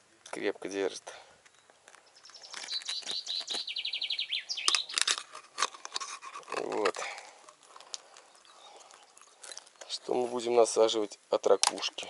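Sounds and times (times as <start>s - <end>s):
mussel shell clicking and scraping: 1.4s - 3.7s, 4.6s - 10.1s.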